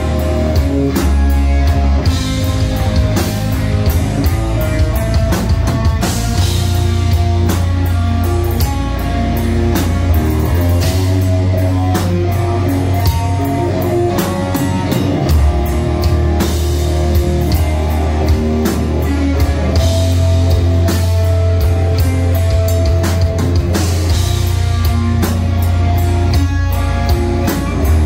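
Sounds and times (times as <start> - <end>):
metal band playing live: 0.0 - 28.0.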